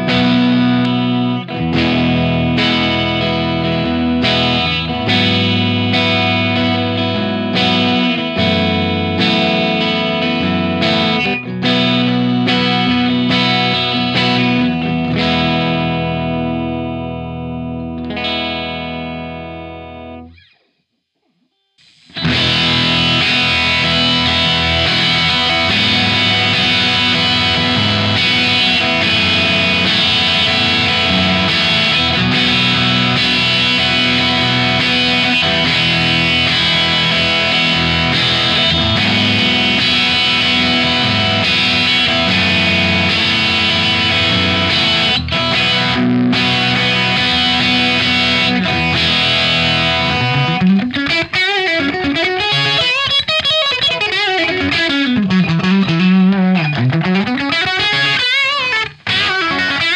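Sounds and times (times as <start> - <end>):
electric guitar chord ringing: 0.0 - 20.5, 21.8 - 59.9
overdriven electric guitar: 0.0 - 59.9.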